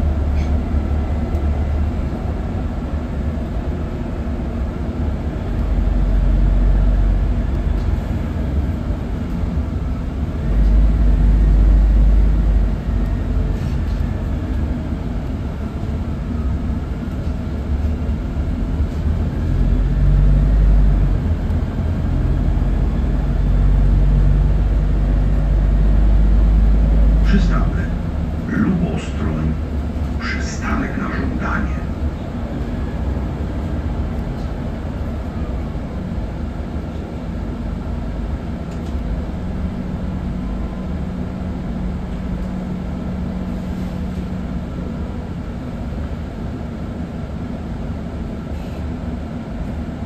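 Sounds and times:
bus engine drone: 0:00.0 - 0:50.0
road rumble: 0:00.0 - 0:50.0.

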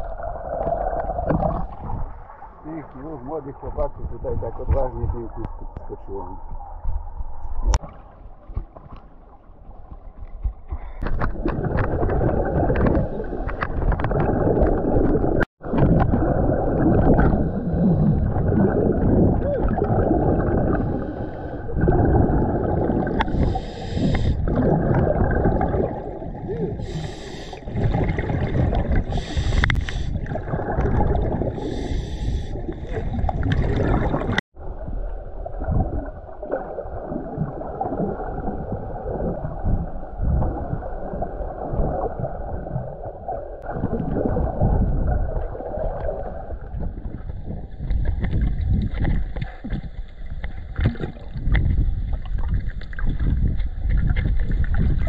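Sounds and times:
muffled underwater rumble and gurgle: 0:00.0 - 0:55.0
bubbling hiss: 0:20.6 - 0:25.7, 0:26.6 - 0:28.0, 0:29.0 - 0:30.3.

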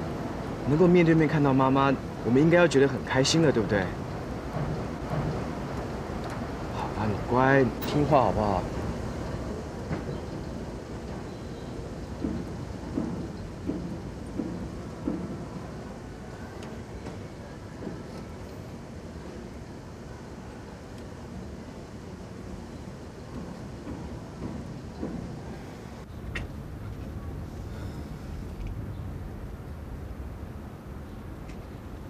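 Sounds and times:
street ambience rumble: 0:00.0 - 0:32.0.

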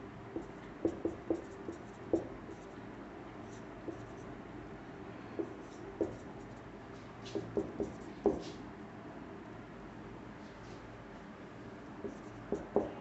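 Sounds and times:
marker writing on whiteboard: 0:00.4 - 0:02.7, 0:03.4 - 0:04.3, 0:05.4 - 0:08.6, 0:12.0 - 0:13.0.

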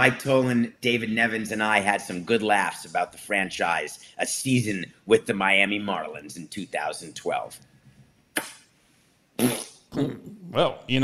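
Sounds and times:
man blowing a raspberry: 0:09.4 - 0:10.7.

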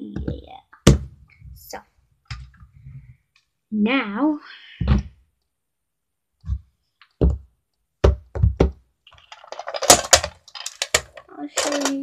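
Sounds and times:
toy suitcase clattering: 0:09.3 - 0:12.0.

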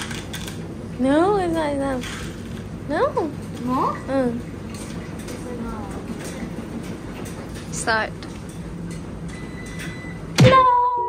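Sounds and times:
laundry machines rumbling: 0:00.0 - 0:11.0.

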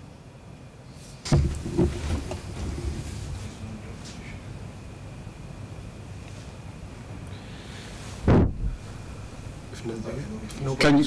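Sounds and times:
microphone handling knocks: 0:01.3 - 0:03.0, 0:08.3 - 0:08.8
low rumbling rubs: 0:01.3 - 0:03.6.

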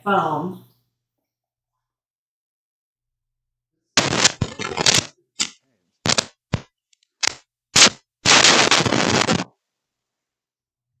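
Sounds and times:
lapel microphone crackling when rubbed: 0:04.0 - 0:05.1, 0:07.2 - 0:09.5.

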